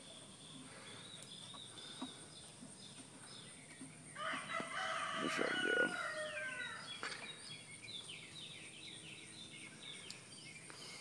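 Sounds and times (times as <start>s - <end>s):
faint bird chirps: 0.0s - 11.0s
rooster crowing: 4.2s - 6.9s.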